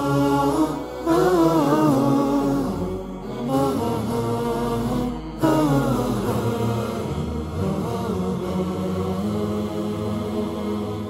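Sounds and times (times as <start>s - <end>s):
low drone: 0.0s - 11.0s
person chanting a melody: 0.0s - 11.0s.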